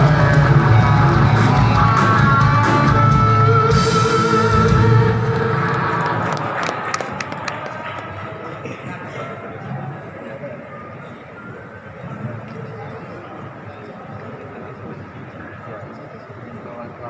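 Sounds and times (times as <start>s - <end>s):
live rock band playing: 0.0s - 6.4s.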